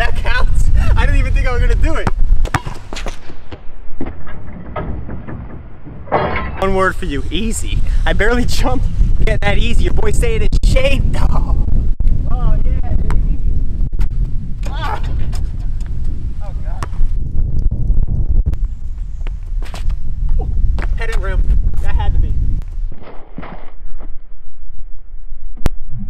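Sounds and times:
wind on microphone: 0:00.0 - 0:23.0, 0:23.6 - 0:26.0
basketball bouncing on asphalt: 0:02.0 - 0:04.1.

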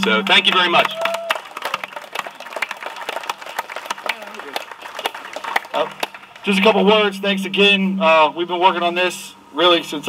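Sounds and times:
crowd applauding: 0:00.0 - 0:06.6
voices: 0:04.0 - 0:10.0.

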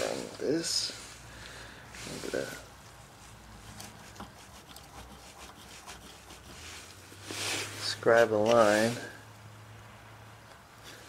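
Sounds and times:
scriber scratching on metal: 0:03.2 - 0:09.0.

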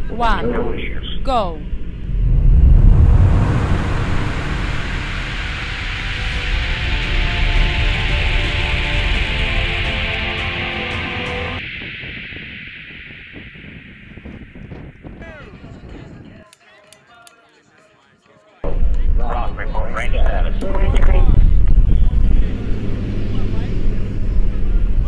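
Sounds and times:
wind buffeting microphone: 0:01.7 - 0:09.3, 0:11.6 - 0:16.5
background music: 0:05.2 - 0:11.6.

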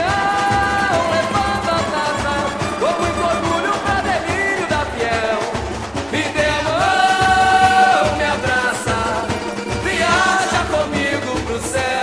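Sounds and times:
low drums beating: 0:00.0 - 0:11.9
samba percussion: 0:00.0 - 0:12.0
several voices singing a melody: 0:00.0 - 0:12.0.

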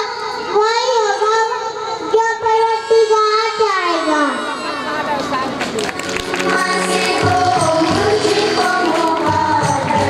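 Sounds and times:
boy singing into microphone: 0:06.4 - 0:10.0.

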